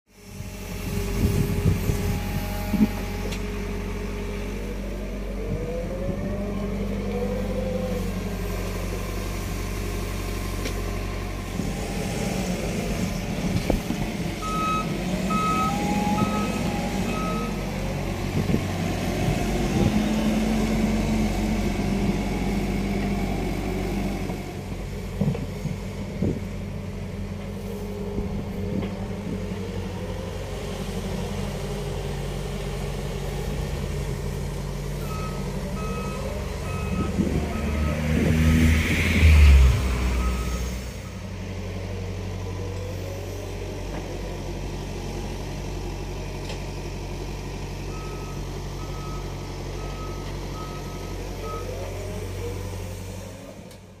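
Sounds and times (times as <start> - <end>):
diesel engines running: 0.1 - 54.0
engine revving under load: 0.1 - 54.0
reversing alarm beeping: 14.4 - 17.7, 35.0 - 38.1, 40.0 - 41.3, 47.9 - 51.9.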